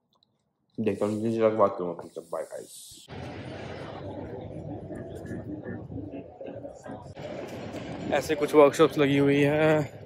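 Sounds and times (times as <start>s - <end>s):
man speaking: 0.8s - 3.1s.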